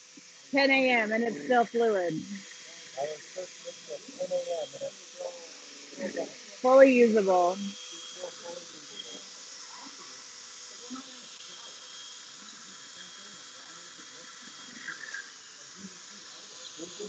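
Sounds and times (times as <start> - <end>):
faint voices murmuring: 1.1 - 17.0.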